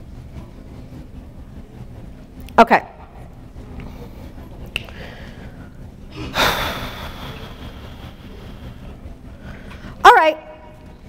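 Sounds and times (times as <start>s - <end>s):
low room hum: 0.0s - 11.0s
person's sharp exhale: 6.2s - 7.7s.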